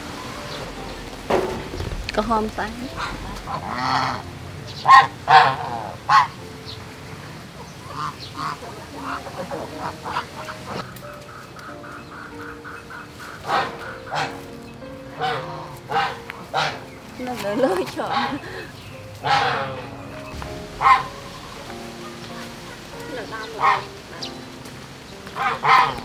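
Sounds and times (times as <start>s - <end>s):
geese honking: 0.0s - 26.0s
soft background music: 0.0s - 26.0s.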